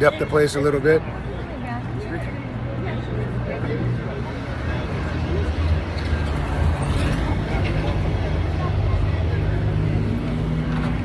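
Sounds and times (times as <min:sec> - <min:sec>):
city street traffic: 0:00.0 - 0:11.0
vehicle engine running nearby: 0:00.0 - 0:11.0.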